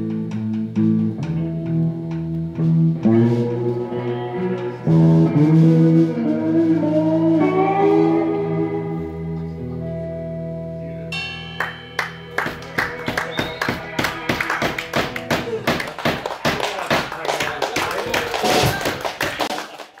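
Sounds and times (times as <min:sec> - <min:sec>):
electric blues band chord: 0:00.0 - 0:15.5
audience applause: 0:12.0 - 0:20.0.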